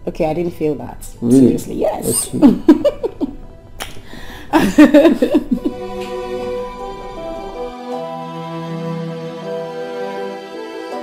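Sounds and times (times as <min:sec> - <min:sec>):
soft background music: 0:00.0 - 0:11.0
giggling laughter: 0:02.2 - 0:03.4, 0:04.5 - 0:05.8
kiss lip smack: 0:03.8 - 0:04.0.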